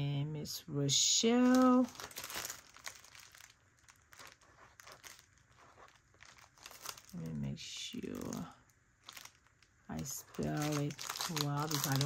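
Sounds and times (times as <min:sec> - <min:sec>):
plastic package crinkling: 0:01.3 - 0:12.0.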